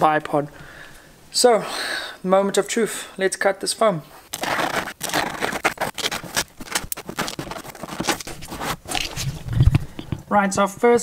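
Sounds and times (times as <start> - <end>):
knife cutting through foam: 4.2 - 9.7.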